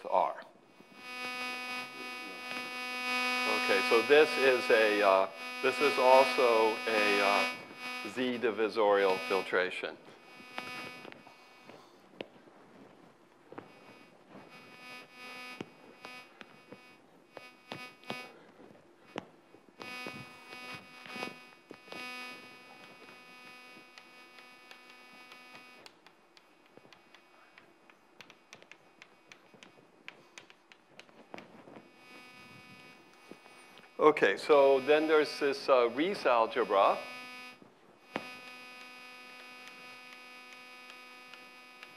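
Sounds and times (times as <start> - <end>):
electronic interference buzz: 0.0 - 41.9.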